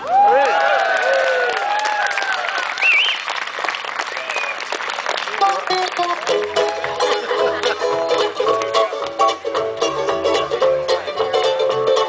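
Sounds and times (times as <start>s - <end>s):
cheering and whooping: 0.0s - 3.4s, 4.0s - 4.7s
audience applauding: 0.0s - 7.9s
plucked notes: 5.6s - 12.0s.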